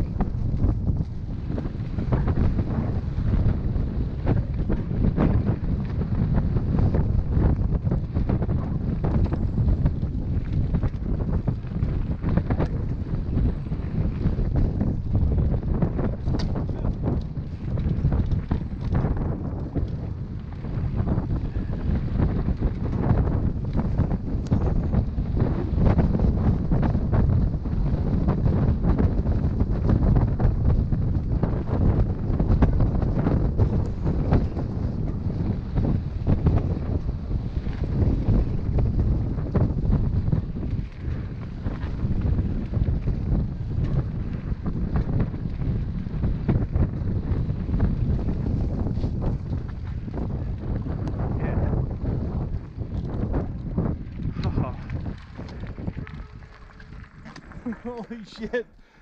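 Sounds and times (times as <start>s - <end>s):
low rumble: 0.0s - 28.4s
bike clicks and rattles: 0.0s - 59.0s
wind buffeting microphone: 0.0s - 59.0s.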